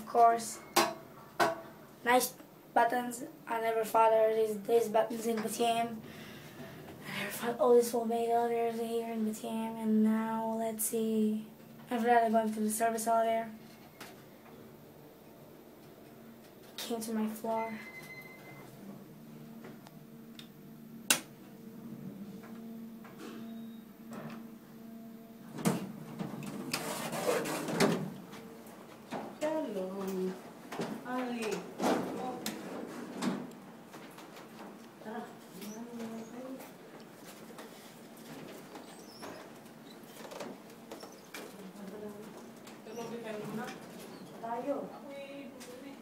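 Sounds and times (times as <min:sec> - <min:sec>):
elevator low hum: 0:03.6 - 0:46.0
elevator doors sliding open: 0:25.5 - 0:28.5
handheld camera rubbing: 0:26.7 - 0:27.8.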